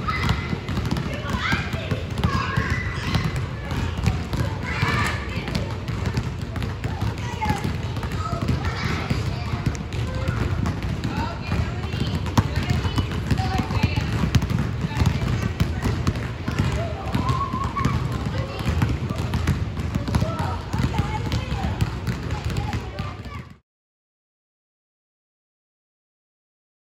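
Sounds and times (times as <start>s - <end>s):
basketballs bouncing on wooden floor: 0.0s - 23.6s
children's voices: 0.0s - 23.6s.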